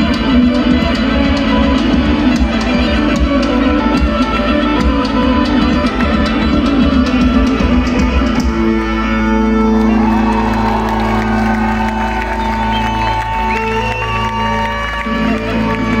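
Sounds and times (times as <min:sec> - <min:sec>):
live folk-rock band playing: 0:00.0 - 0:16.0.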